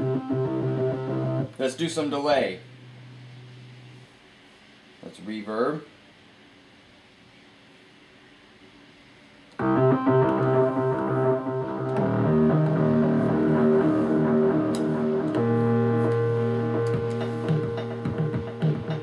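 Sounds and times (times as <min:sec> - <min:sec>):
keyboard playing sustained chords: 0:00.0 - 0:01.6, 0:09.6 - 0:19.0.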